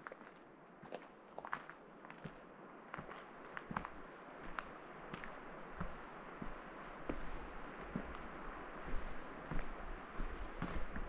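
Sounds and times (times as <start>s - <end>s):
footsteps on gravel path: 0.0s - 11.0s.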